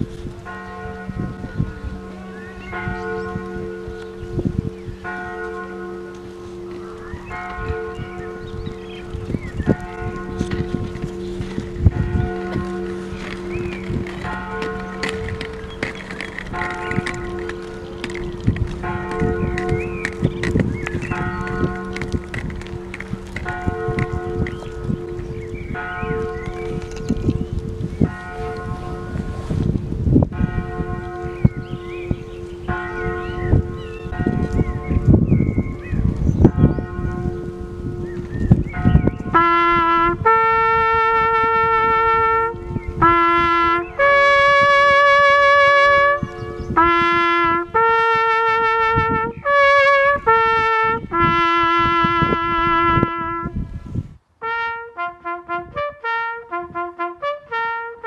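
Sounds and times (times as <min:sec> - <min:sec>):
church bells tolling: 0:00.0 - 0:53.7.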